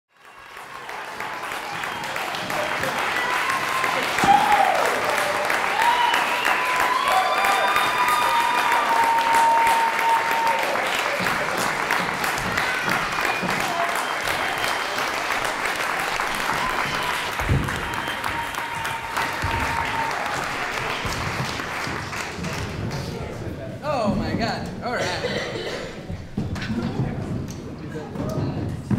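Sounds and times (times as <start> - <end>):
audience clapping: 0.1 - 23.4
voices cheering and whooping: 1.8 - 11.2, 16.2 - 20.9.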